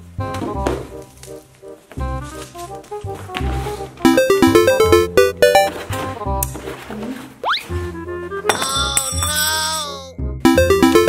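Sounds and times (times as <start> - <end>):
children's background music: 3.7 - 6.0, 8.6 - 11.0.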